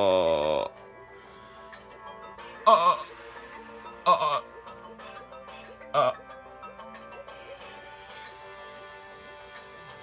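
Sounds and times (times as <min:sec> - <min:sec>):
man groaning in pain: 0:02.5 - 0:03.2, 0:03.9 - 0:04.6, 0:05.9 - 0:06.3.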